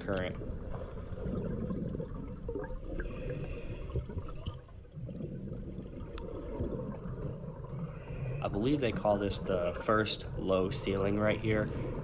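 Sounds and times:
muffled underwater rushing water: 0.0 - 12.0.

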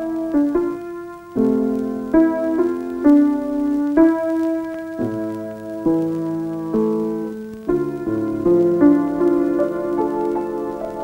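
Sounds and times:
piano chords: 0.0 - 11.0.

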